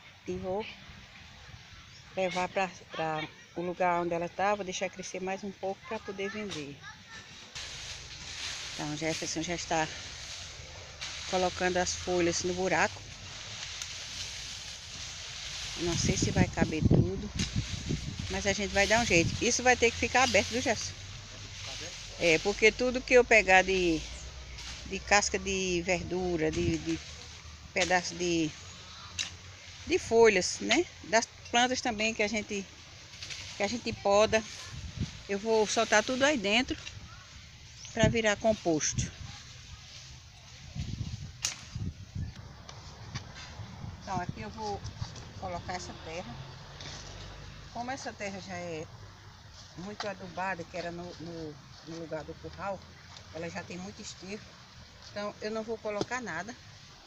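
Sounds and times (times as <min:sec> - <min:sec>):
dry leaves rustling under a hoe: 0:05.7 - 0:57.0.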